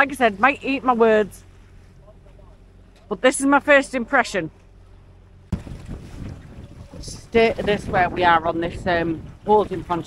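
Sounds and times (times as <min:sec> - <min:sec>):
water sloshing against hull: 0:00.0 - 0:10.0
wind buffeting microphone: 0:04.7 - 0:10.0.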